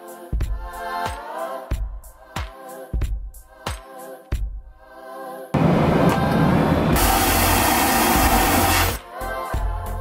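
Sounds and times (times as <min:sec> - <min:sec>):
loud rushing hiss: 0:05.6 - 0:09.0.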